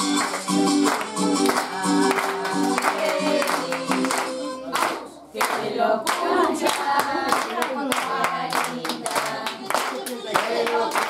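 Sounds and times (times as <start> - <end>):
people clapping in rhythm: 0.0 - 11.0
group singing: 0.2 - 11.0.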